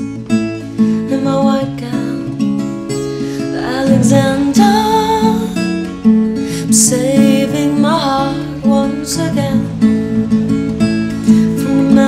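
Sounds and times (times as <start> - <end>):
acoustic guitar folk accompaniment: 0.0 - 12.0
soft wordless vocal: 3.5 - 5.6.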